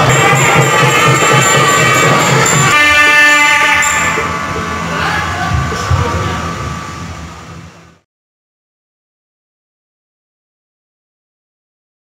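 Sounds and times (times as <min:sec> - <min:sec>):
long note on wind instrument: 0:02.7 - 0:05.0.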